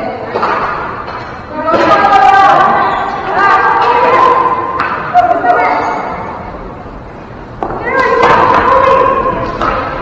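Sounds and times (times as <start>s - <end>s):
players calling and shouting: 0.0s - 10.0s.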